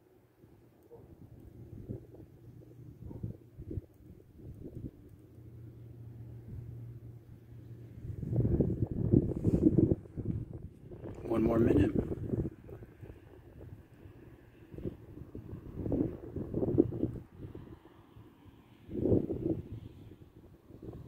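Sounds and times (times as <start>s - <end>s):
wind buffeting microphone: 0.9s - 5.3s, 6.2s - 21.0s.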